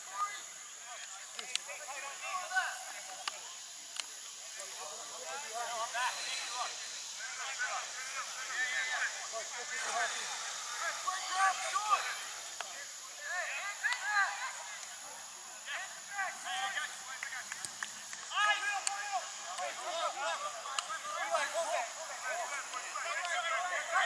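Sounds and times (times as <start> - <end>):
distant shouts of players and spectators: 4.3 - 24.0.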